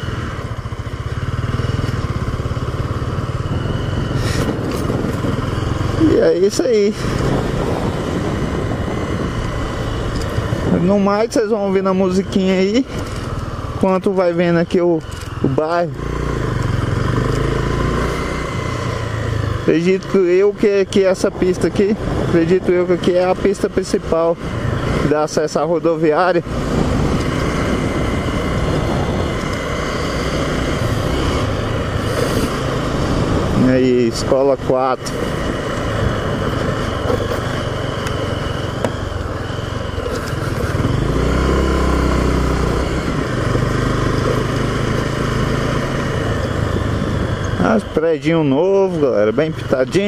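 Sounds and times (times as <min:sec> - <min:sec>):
motorcycle engine running: 0:00.0 - 0:50.0
wind and road noise: 0:00.0 - 0:50.0.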